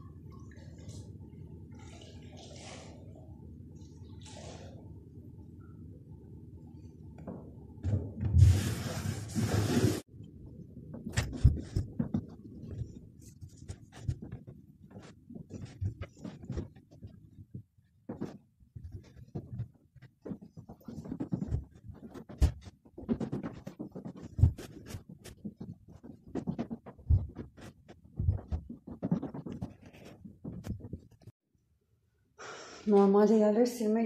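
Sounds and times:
low steady hum: 0.0 - 9.5
knocks and thumps: 10.9 - 31.3.

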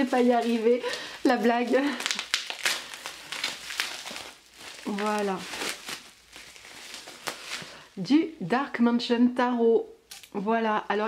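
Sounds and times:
bubble wrap crinkling: 0.0 - 8.1.

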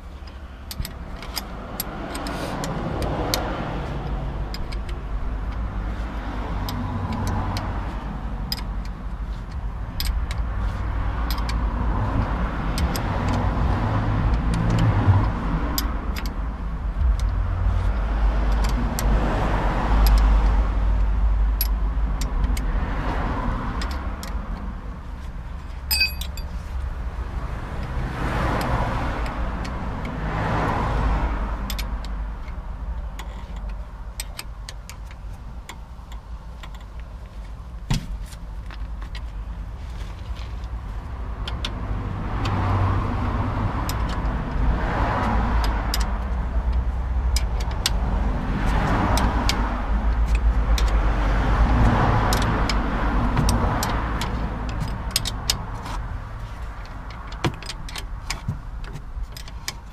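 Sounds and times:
cars passing: 0.0 - 59.9
hand tool metallic clicks: 0.2 - 5.7, 8.4 - 10.5, 11.2 - 13.6, 14.2 - 16.4, 19.9 - 22.7, 25.8 - 26.6, 31.5 - 37.3, 43.8 - 56.1.

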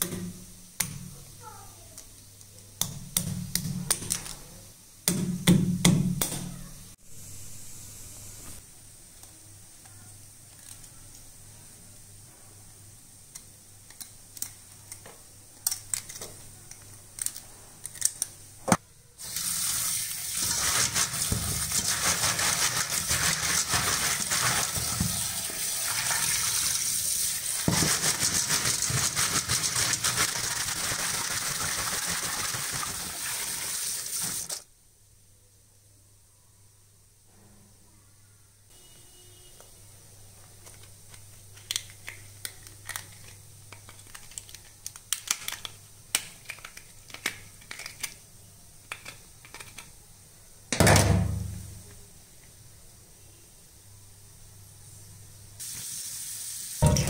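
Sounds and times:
tap water running into steel bowl: 19.3 - 34.6.

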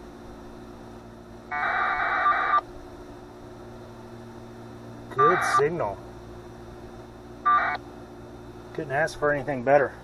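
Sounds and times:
faint steady hum: 0.0 - 10.0
warbling two-tone data burst: 1.5 - 2.6, 5.2 - 5.7.

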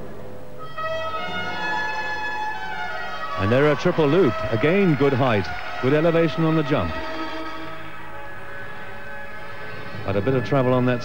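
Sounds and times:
music holding sustained chord: 0.6 - 11.0.

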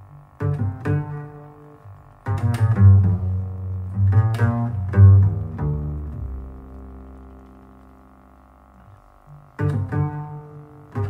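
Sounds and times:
plucked double bass note: 0.0 - 11.0.

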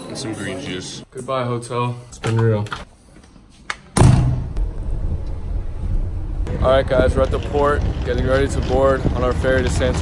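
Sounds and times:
sharp thump: 4.0 - 4.6.

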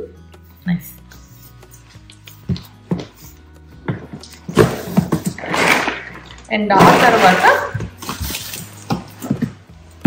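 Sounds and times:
soft background music: 0.0 - 10.0
packing rustling: 4.2 - 9.3.

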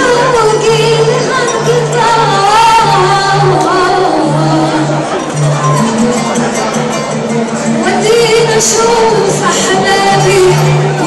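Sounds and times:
woman singing ornamented melody: 0.0 - 6.1, 7.6 - 11.0
band holding low notes: 0.0 - 11.0.

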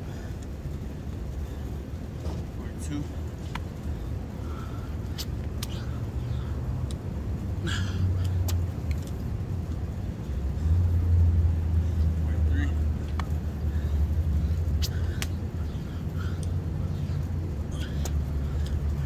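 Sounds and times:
low motor rumble: 0.0 - 19.0.

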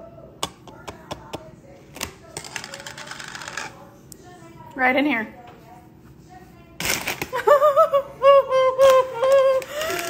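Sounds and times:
plastic packaging crinkling: 8.8 - 10.0.

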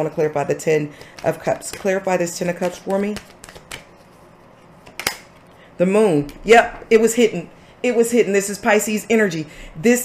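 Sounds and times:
cards shuffling: 1.0 - 5.4.

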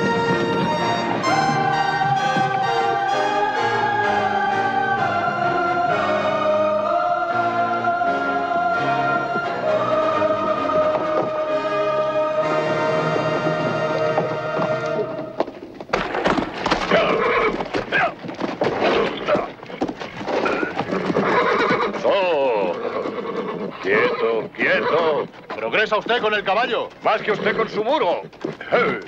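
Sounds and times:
hooves on packed dirt: 0.0 - 3.0, 13.2 - 29.0
background music: 0.0 - 15.7
horse neighing: 16.7 - 29.0.

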